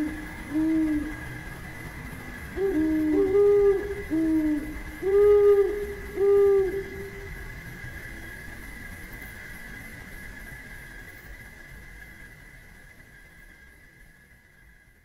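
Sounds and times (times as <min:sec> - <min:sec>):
dove cooing: 0:00.0 - 0:01.4, 0:02.4 - 0:07.5
faint high hum: 0:00.0 - 0:15.0.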